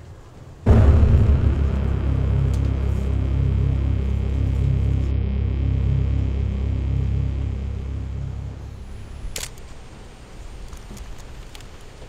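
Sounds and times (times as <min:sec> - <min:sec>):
low rumbling horror score drone: 0:00.7 - 0:09.9.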